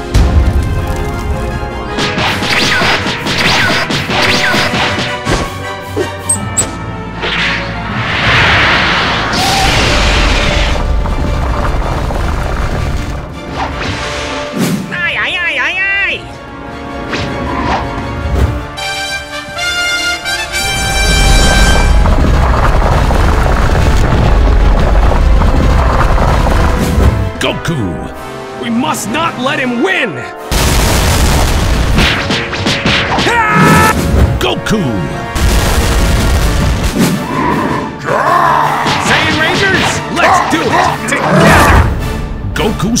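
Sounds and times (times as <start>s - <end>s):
booming impacts: 0.0s - 1.0s, 8.0s - 14.1s, 20.6s - 27.4s, 30.5s - 33.2s, 35.2s - 37.3s
cartoon action music: 1.5s - 11.3s, 13.4s - 22.4s, 24.1s - 43.0s
person shouting: 33.2s - 33.9s.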